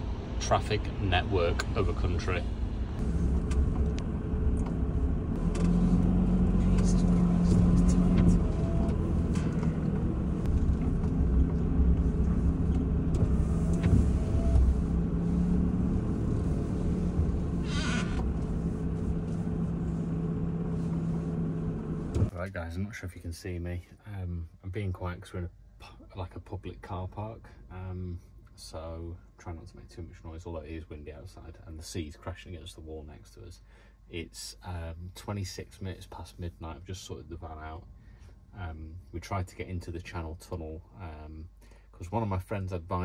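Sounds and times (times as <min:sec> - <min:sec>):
diesel van engine driving: 0:00.0 - 0:22.3.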